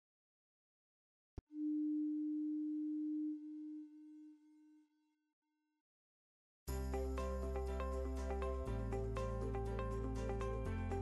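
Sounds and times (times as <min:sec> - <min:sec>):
low electronic pure tone: 0:01.4 - 0:04.7.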